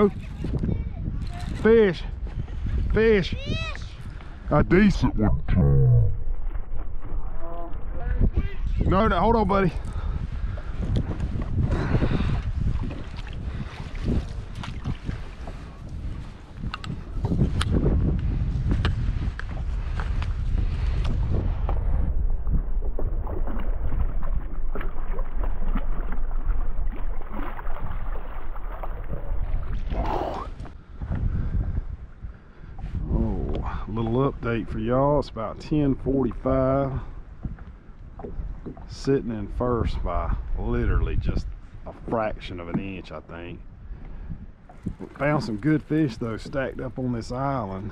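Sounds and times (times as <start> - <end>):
moving water: 0.0 - 31.2, 31.9 - 47.9
wind noise on microphone: 0.0 - 47.9.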